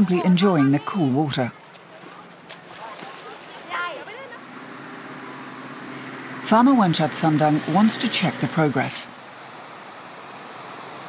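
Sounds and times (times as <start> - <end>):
person calling out: 0.0 - 1.5
shallow water flowing and splashing: 0.0 - 11.0
distant children's voices: 1.5 - 4.6.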